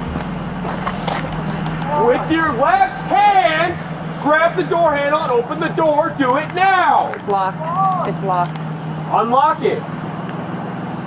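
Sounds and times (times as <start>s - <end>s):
car engine idling: 0.0s - 11.0s
faint voices: 1.5s - 9.9s.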